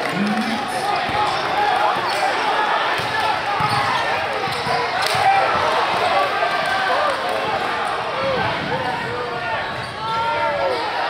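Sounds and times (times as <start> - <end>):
crowd chatter in gym: 0.0 - 11.0
sneaker squeaks: 3.6 - 4.0.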